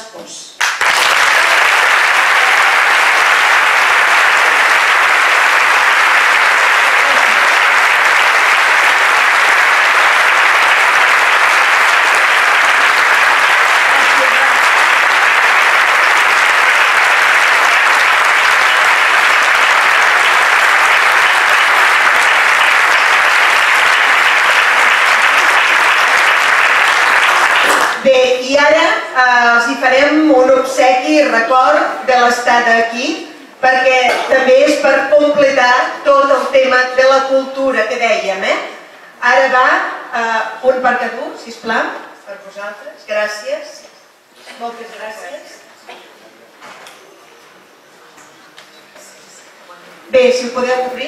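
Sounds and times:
large audience applauding: 0:00.6 - 0:28.1.

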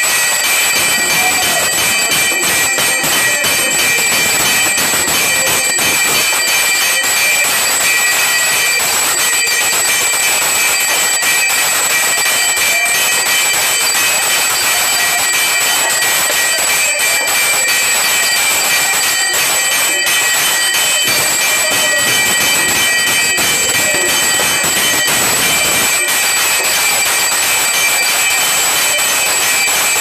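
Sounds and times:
sustained ringing tones: 0:00.0 - 0:30.0
temple bells and gongs clanging: 0:00.0 - 0:30.0.

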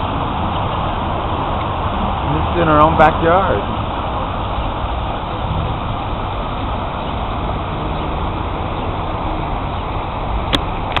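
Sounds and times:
city traffic rumble: 0:00.0 - 0:11.0
fountain water splashing: 0:00.0 - 0:11.0.

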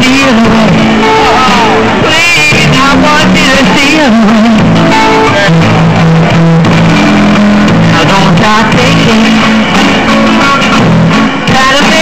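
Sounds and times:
blues guitar with held notes: 0:00.0 - 0:12.0.

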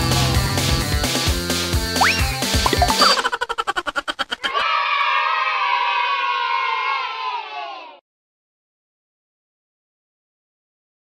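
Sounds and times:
children cheering: 0:02.8 - 0:08.0.

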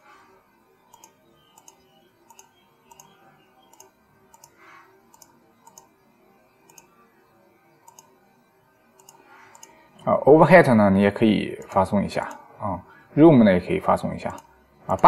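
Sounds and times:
computer mouse clicking: 0:00.9 - 0:05.9, 0:06.6 - 0:07.0, 0:07.8 - 0:08.2, 0:09.0 - 0:10.1, 0:11.6 - 0:12.4.

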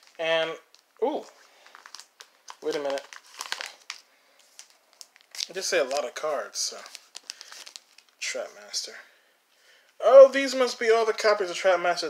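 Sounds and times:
plastic sleeves crinkling: 0:00.0 - 0:08.9.

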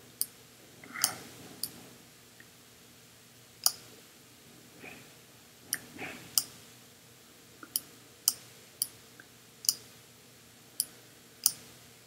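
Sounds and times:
computer mouse clicks: 0:10.8 - 0:11.6.

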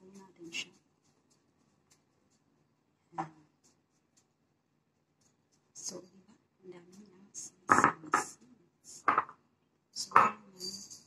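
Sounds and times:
ceramic bowl knocking on stone: 0:07.7 - 0:08.3, 0:09.1 - 0:09.4, 0:10.1 - 0:10.4.

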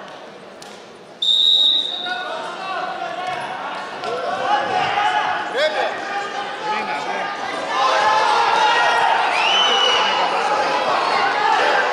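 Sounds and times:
voices and chatter in a hall: 0:00.0 - 0:11.9
referee's whistle blast: 0:01.2 - 0:02.1.

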